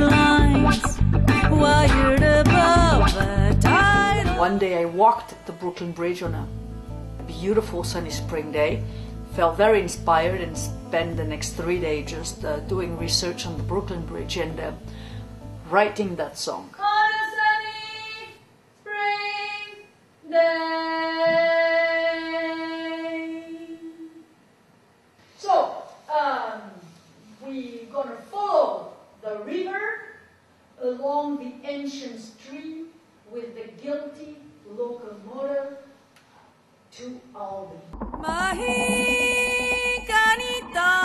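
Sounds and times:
woman singing unaccompanied: 0.0s - 6.6s, 16.7s - 24.2s, 38.2s - 41.0s
woman singing long notes: 1.4s - 5.7s, 38.2s - 41.0s.

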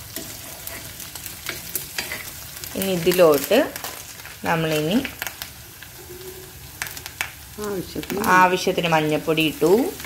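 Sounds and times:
spices sizzling in oil: 0.0s - 10.0s.

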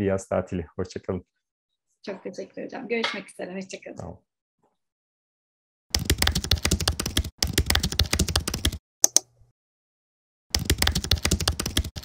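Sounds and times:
keyboard typing: 6.0s - 9.3s, 10.5s - 12.0s.

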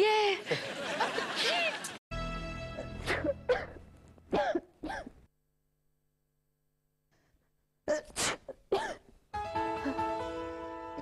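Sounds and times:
person sneezing: 3.0s - 5.2s, 7.9s - 9.1s.

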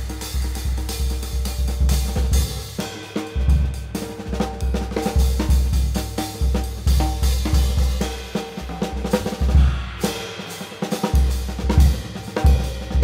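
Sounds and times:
jazz drum kit played with sticks: 0.0s - 13.0s.

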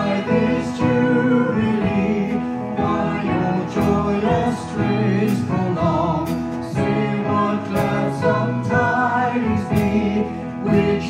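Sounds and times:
group singing with band: 0.0s - 11.0s.

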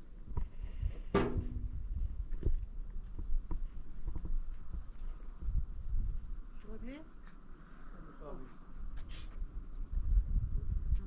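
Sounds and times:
insects chirring: 0.0s - 11.0s
low knocks and thumps: 1.1s - 2.6s.

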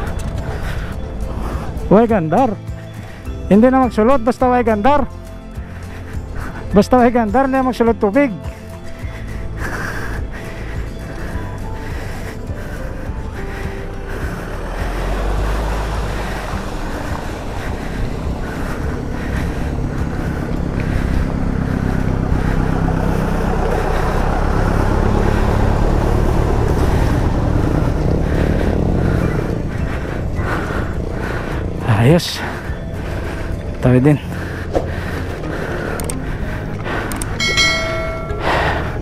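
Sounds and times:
vehicles driving through floodwater: 0.0s - 39.0s.

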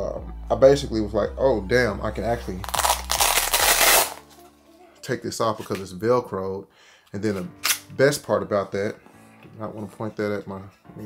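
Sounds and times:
velcro ripping apart: 2.6s - 4.3s.

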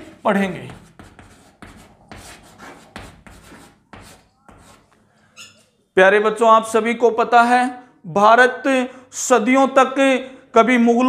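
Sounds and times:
chalk scratching on chalkboard: 0.0s - 5.6s.

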